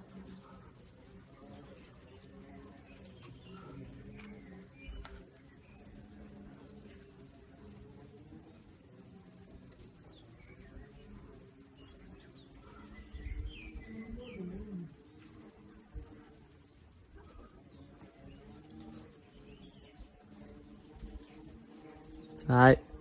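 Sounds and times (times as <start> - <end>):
high insect buzz: 0.0 - 23.0
small birds chirping: 0.0 - 23.0.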